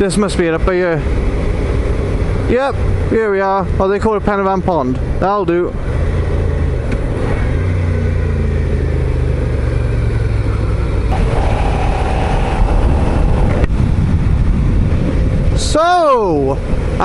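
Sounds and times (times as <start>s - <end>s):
motorcycle engine running: 5.8s - 15.5s.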